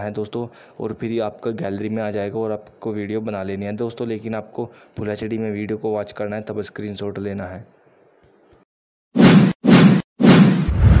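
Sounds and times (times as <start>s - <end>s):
whoosh sound effects: 9.2s - 11.0s
deep low boom: 10.7s - 11.0s.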